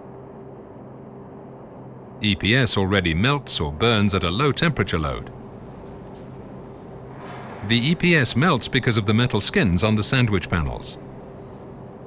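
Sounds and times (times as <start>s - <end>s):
faint steady tone: 0.0s - 12.0s
gas burner flame hum: 1.9s - 12.0s.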